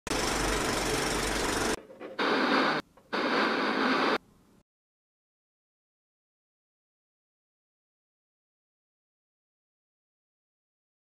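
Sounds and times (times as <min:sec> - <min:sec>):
film projector rattling: 0:00.1 - 0:01.8
television static hiss: 0:02.2 - 0:04.2.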